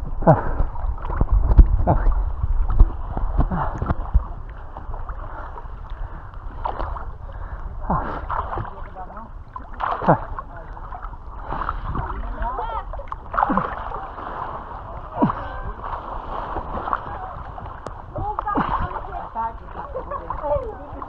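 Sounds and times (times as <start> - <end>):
low rumble of moving water: 0.0 - 21.0
water lapping and splashing: 0.0 - 21.0
people calling out: 15.1 - 15.9.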